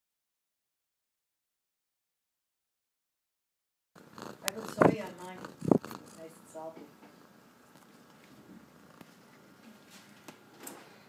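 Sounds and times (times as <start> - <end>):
cat purring: 4.0 - 9.5.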